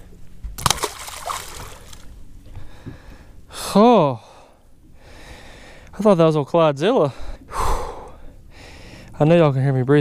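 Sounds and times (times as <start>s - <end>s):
water sloshing: 0.0s - 2.3s
fish splashing into water: 0.6s - 2.1s.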